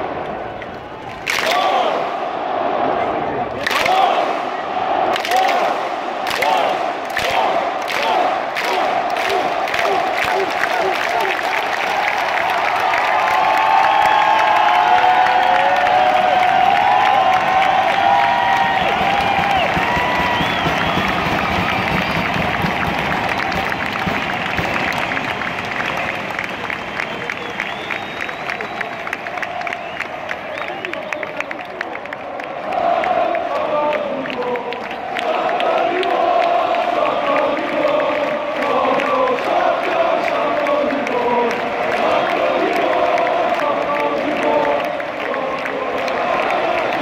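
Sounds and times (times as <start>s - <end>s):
crowd cheering and shouting: 0.0s - 47.0s
crowd clapping in unison: 0.1s - 2.2s, 3.4s - 47.0s.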